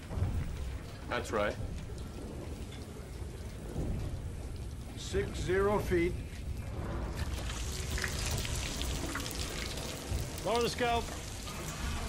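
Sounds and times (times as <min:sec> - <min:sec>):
rushing water noise: 0:07.0 - 0:12.0.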